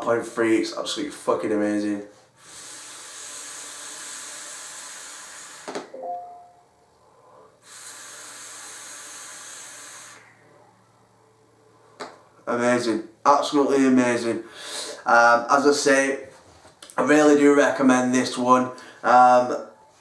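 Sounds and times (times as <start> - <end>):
air hissing through vape: 2.4 - 5.9, 7.6 - 10.4
vapour exhaled with hiss: 2.4 - 5.9, 7.6 - 10.4.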